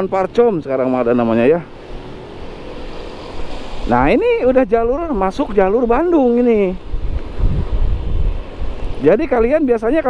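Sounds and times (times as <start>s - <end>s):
road and vehicle noise: 0.0s - 10.0s
wind buffeting microphone: 3.2s - 10.0s.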